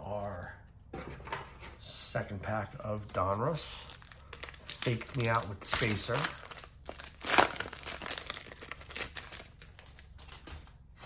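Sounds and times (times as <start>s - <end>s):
foil wrapper tearing and crinkling: 3.0s - 10.5s.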